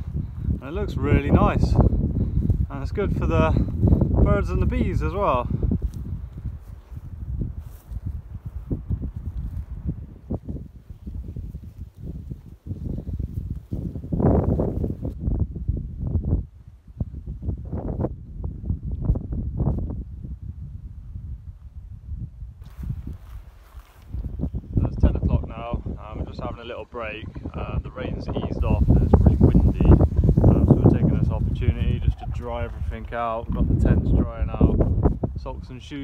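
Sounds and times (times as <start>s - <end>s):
wind rumbling on microphone: 0.0s - 36.0s.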